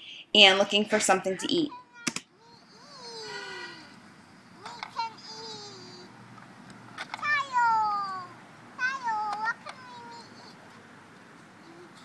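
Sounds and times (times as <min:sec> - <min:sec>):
child squealing: 0:01.7 - 0:04.0, 0:07.2 - 0:09.2.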